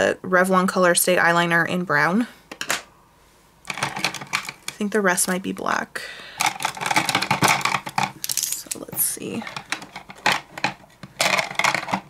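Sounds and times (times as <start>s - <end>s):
plastic pens clattering together: 3.7s - 5.4s, 6.4s - 12.0s.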